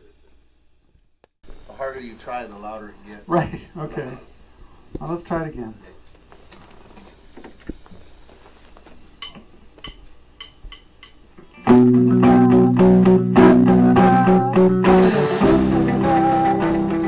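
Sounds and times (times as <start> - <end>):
rock band playing: 11.5 - 17.0.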